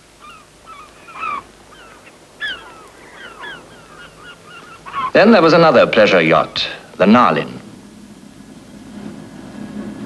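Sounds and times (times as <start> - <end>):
gulls calling: 0.0 - 8.0.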